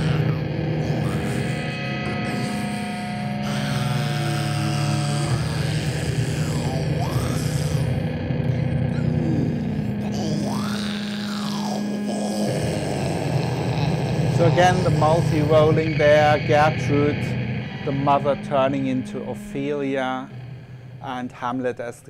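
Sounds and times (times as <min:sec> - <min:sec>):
music with low tones: 0:00.0 - 0:22.0.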